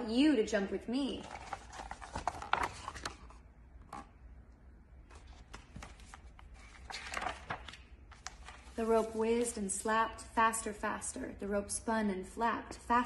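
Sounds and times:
book pages rustling: 0:01.2 - 0:04.1, 0:05.0 - 0:09.7.

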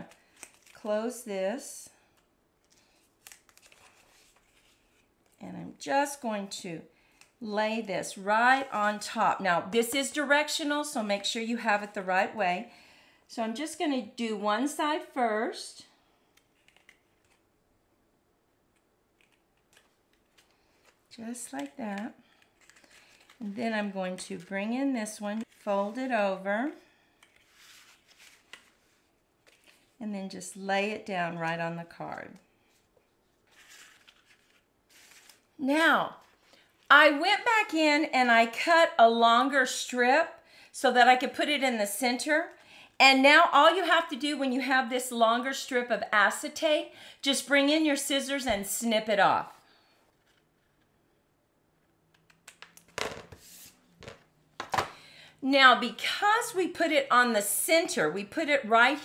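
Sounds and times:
paper rustling: 0:00.1 - 0:00.8, 0:02.6 - 0:05.4, 0:19.2 - 0:26.4, 0:27.2 - 0:30.0, 0:32.7 - 0:36.9.

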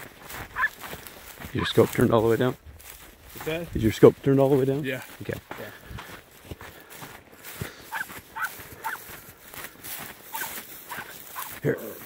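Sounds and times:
footsteps swishing through dry grass: 0:00.0 - 0:12.0
dog yelping: 0:00.5 - 0:00.8, 0:07.9 - 0:09.1, 0:10.3 - 0:11.5.

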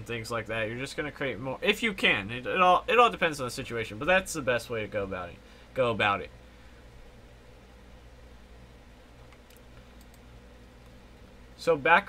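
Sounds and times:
low steady hum: 0:00.0 - 0:12.0
faint computer clicks: 0:09.2 - 0:11.0.

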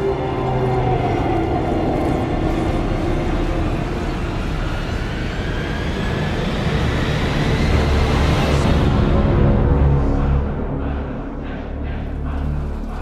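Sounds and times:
film score: 0:00.0 - 0:13.0.

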